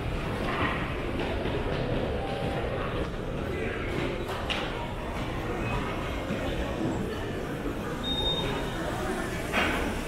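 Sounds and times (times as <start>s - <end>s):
low rumble of indoor crowd noise: 0.0s - 10.0s.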